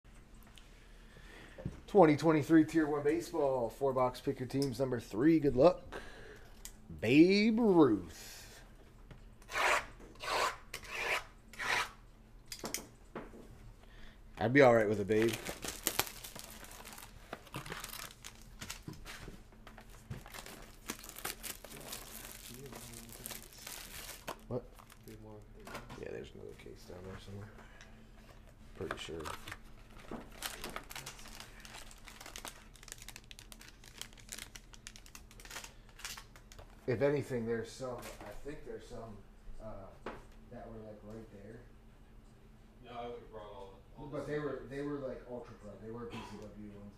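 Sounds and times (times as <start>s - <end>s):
foil wrappers crinkling: 14.7s - 25.4s, 28.8s - 36.9s.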